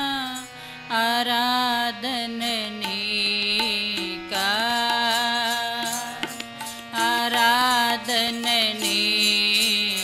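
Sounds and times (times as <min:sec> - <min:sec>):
harmonium: 0:00.0 - 0:10.0
woman singing: 0:00.0 - 0:10.0.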